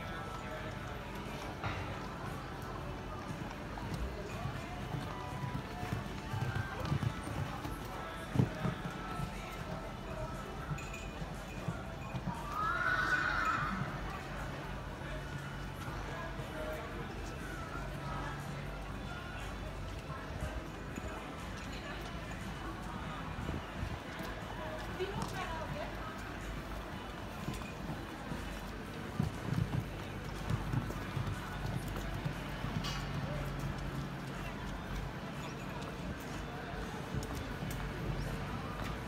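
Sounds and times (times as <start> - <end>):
horse hoofbeats on sand: 0.2 - 13.6, 23.4 - 39.0
horse whinnying: 12.5 - 14.0.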